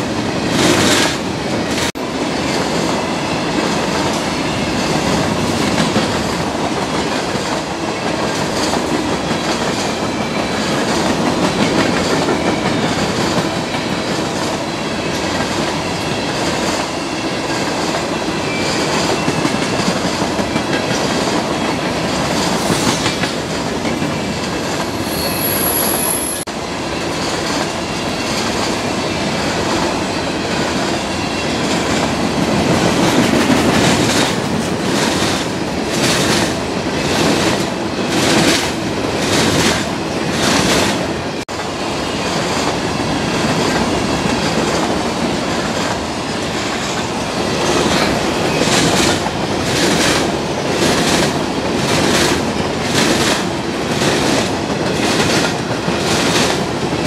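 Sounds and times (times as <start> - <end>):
freight train rumbling past: 0.0 - 57.0.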